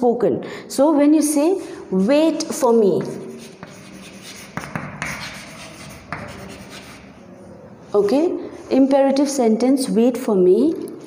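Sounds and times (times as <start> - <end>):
chalk scratching on blackboard: 1.9 - 7.2
chalk tapping on board: 2.9 - 7.1.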